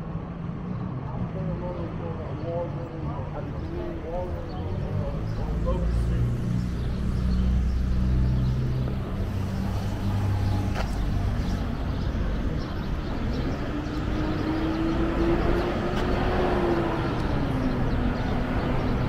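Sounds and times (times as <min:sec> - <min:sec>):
street traffic noise: 0:00.0 - 0:19.0
vehicle engine humming: 0:02.5 - 0:19.0.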